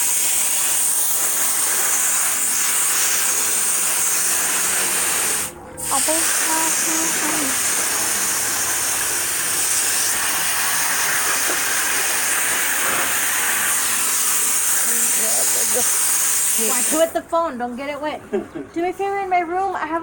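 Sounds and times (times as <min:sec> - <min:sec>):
hose nozzle spraying water: 0:00.0 - 0:17.2.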